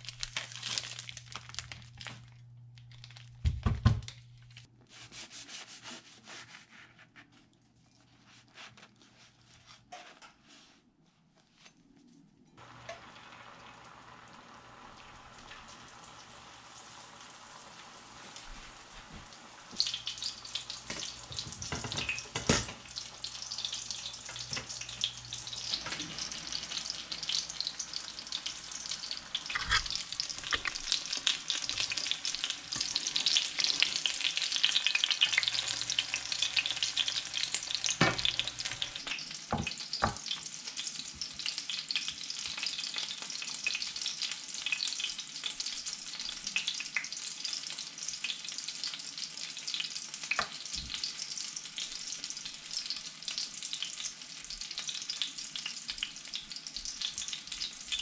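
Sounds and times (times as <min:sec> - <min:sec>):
fish frying in oil: 0:00.0 - 0:02.3, 0:12.6 - 0:58.0.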